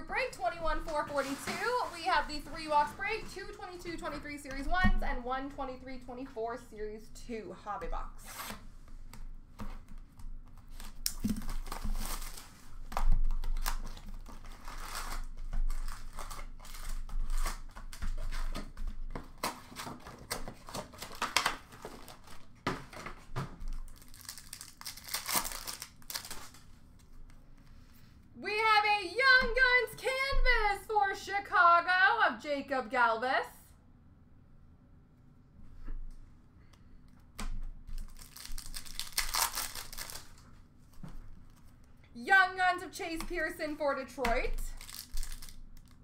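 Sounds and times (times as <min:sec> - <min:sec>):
person speaking: 0:00.0 - 0:08.5, 0:28.4 - 0:33.7, 0:42.1 - 0:44.8
plastic wrapping crinkling and tearing: 0:09.9 - 0:27.1, 0:37.9 - 0:40.6, 0:44.3 - 0:46.0.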